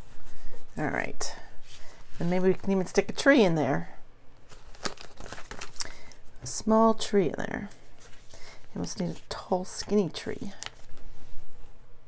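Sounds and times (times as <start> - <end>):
paper rustling: 4.4 - 6.2, 7.7 - 11.2.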